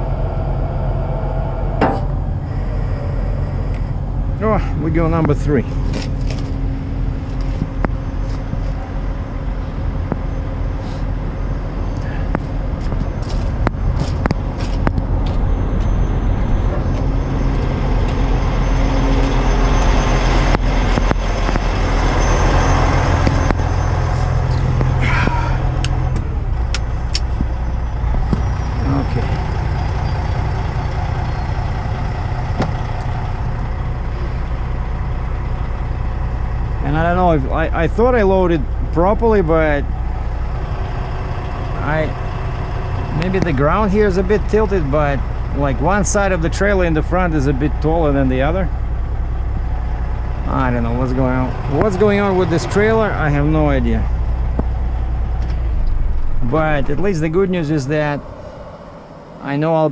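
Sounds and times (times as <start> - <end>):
diesel truck engine running: 0.0 - 59.9
metal clanks and knocks: 1.8 - 2.4
short squeal: 15.5 - 26.2.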